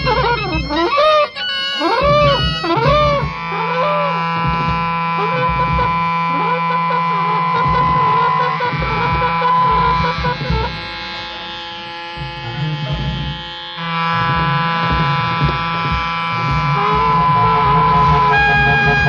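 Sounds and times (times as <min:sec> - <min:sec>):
droning rock band: 0:00.0 - 0:19.0.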